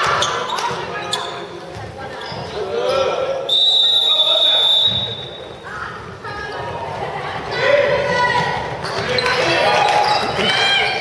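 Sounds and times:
high whistle-like tone: 0:03.5 - 0:05.4.

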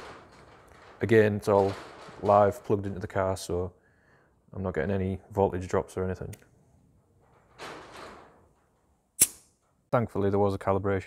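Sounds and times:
sharp click: 0:09.2 - 0:09.5.

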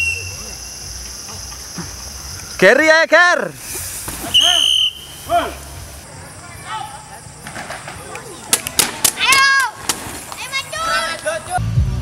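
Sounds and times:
high whistle blast: 0:00.0 - 0:01.0, 0:04.2 - 0:05.6.

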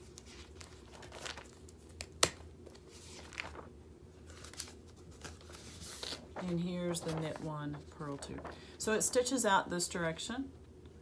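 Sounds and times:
paper rustling and shuffling: 0:00.0 - 0:09.4.

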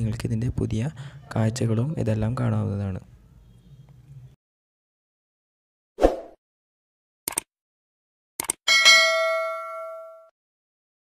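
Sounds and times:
bell ding: 0:08.7 - 0:10.3.

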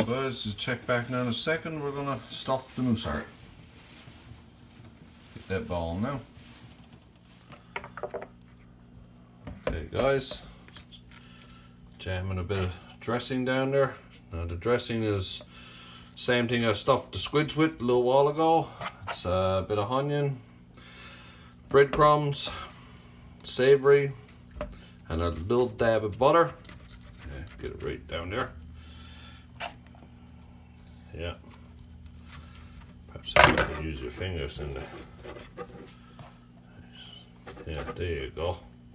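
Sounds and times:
steady low hum: 0:00.0 - 0:38.9.

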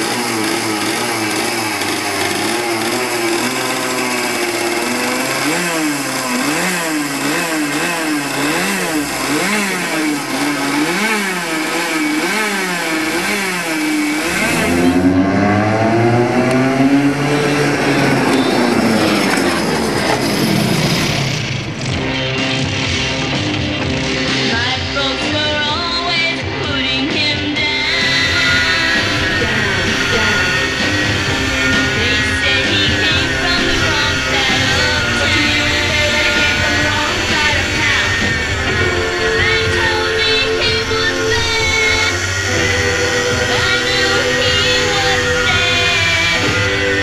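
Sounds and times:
two-stroke kart engine revving: 0:00.0 - 0:47.0.

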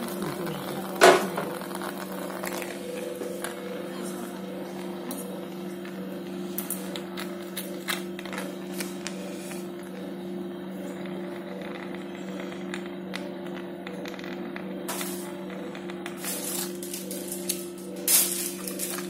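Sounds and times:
low machine hum: 0:00.0 - 0:19.0.

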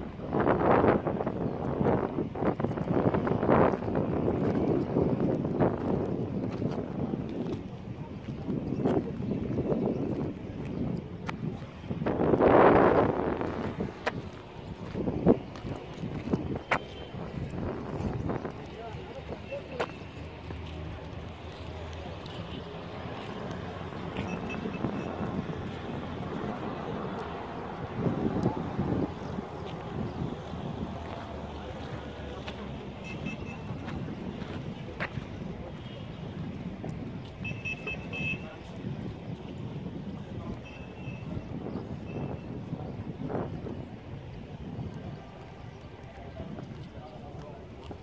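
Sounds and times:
wind rumbling on microphone: 0:00.0 - 0:48.0
murmur of voices: 0:03.1 - 0:48.0.

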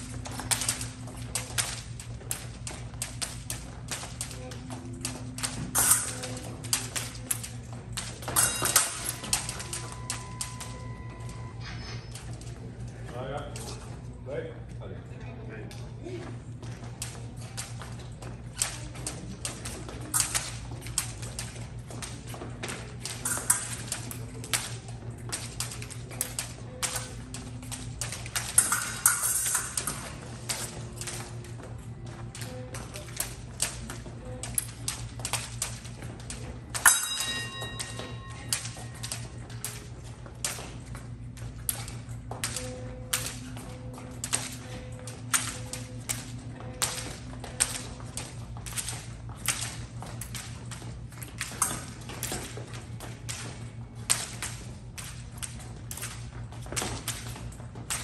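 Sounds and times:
footwork on metal piste: 0:00.0 - 0:14.2, 0:16.0 - 0:58.0
low hum: 0:00.0 - 0:58.0.

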